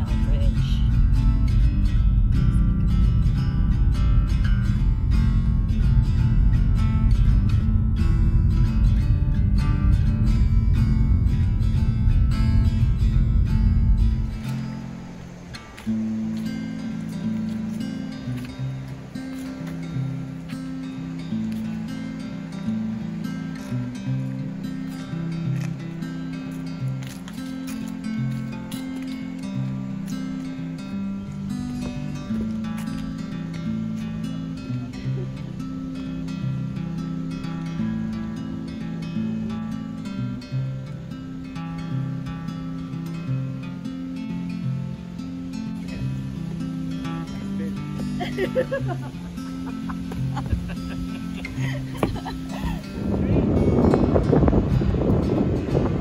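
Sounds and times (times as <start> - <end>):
acoustic guitar plucking: 0.0 - 56.0
car road noise rumble: 0.0 - 56.0.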